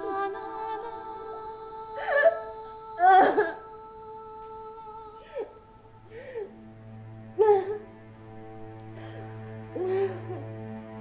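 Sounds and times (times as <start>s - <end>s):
woman's wordless vocal sounds: 0.0s - 6.6s
soft background music: 0.0s - 11.0s.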